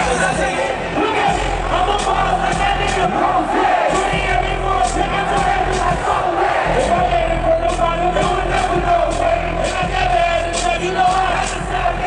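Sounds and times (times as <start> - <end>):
large crowd noise: 0.0 - 12.0
loud hip-hop music over pa: 0.0 - 12.0.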